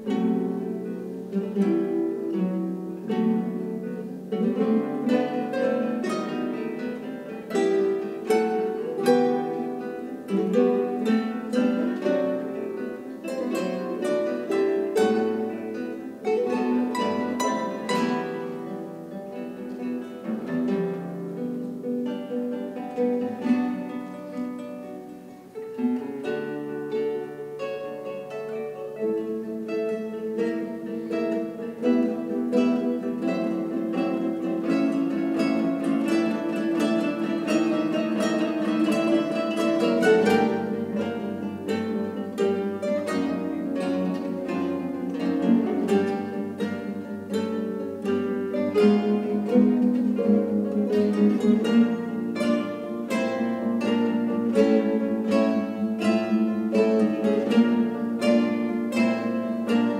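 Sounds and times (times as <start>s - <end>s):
classical guitar ensemble playing: 0.0s - 59.9s.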